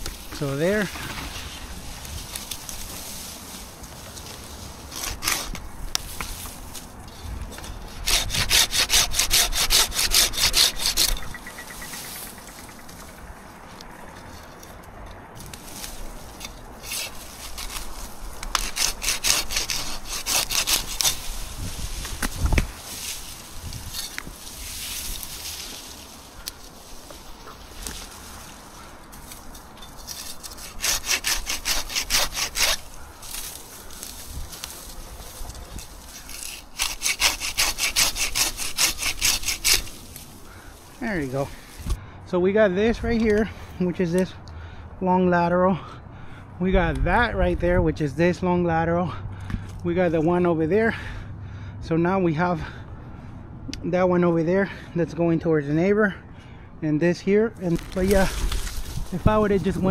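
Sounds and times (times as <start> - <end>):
hand saw cutting branches: 0.0 - 14.7, 15.4 - 42.0, 57.6 - 59.9.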